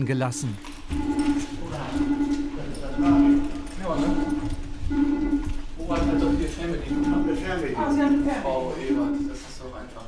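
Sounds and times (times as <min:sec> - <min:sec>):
alarm clock low tone: 0:00.0 - 0:09.7.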